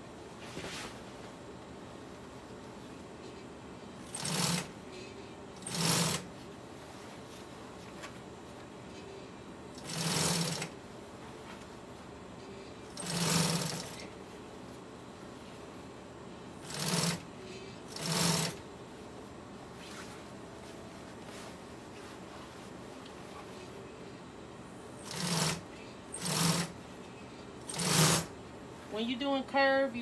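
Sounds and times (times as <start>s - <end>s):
steady low hum: 0.0s - 30.0s
sewing machine stitching: 4.0s - 4.7s, 5.6s - 6.3s, 9.8s - 10.7s, 12.9s - 14.0s, 16.6s - 17.2s, 17.9s - 18.6s, 25.0s - 26.8s, 27.6s - 28.3s.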